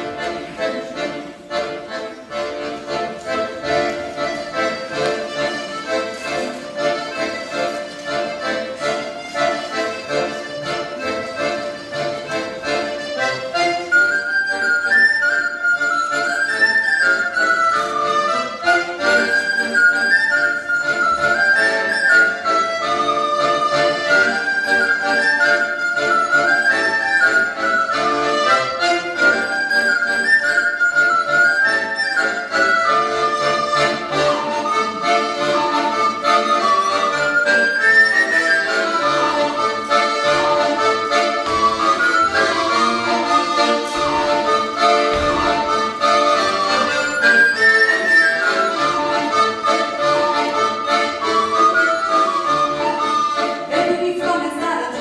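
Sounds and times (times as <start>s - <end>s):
accordion chords: 0.0s - 55.0s
recorder playing folk melody: 0.0s - 55.0s.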